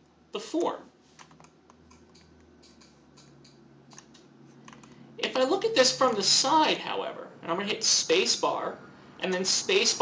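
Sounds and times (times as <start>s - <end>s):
computer keyboard clicking: 1.2s - 5.0s
mouse clicks: 1.2s - 5.0s.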